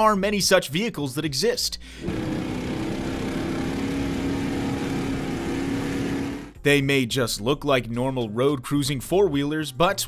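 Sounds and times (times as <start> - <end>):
engine droning: 2.0 - 6.6.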